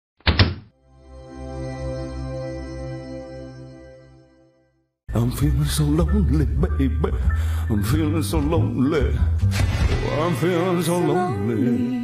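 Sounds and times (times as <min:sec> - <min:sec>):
held musical chord: 0:00.8 - 0:04.8
sharp double thud: 0:09.5 - 0:10.2.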